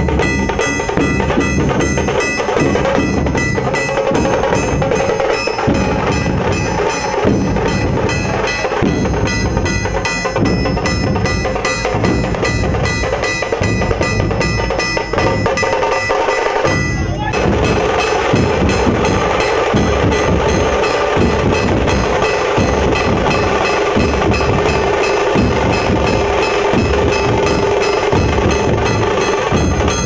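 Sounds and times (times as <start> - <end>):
barrel drums beaten fast: 0.0 - 30.0.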